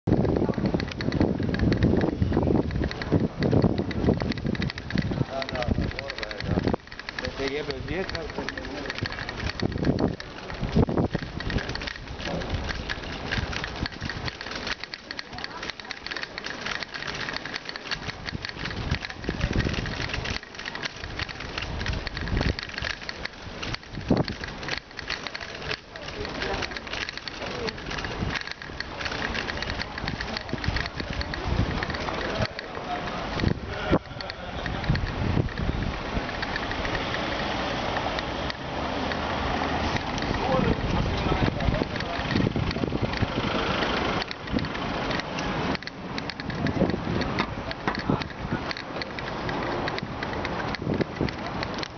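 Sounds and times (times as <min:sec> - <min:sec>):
bicycle rattling over cobblestones: 0:00.0 - 0:51.9
low rumbles: 0:00.0 - 0:51.9.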